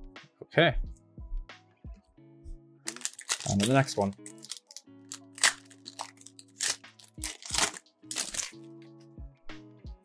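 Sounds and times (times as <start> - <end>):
soft background music: 0.0 - 10.0
foil wrapper tearing and crinkling: 2.9 - 8.6.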